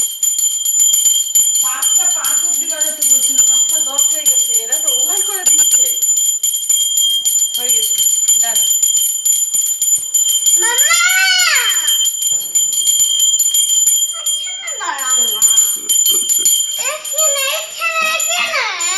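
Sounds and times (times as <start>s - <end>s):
hand bell ringing: 0.0s - 18.9s
voices: 1.6s - 6.0s, 10.6s - 12.0s, 14.1s - 18.9s.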